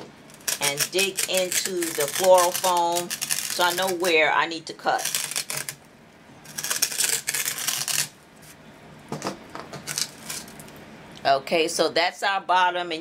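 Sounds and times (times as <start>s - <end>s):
pen scratching floral foam: 0.5s - 4.1s.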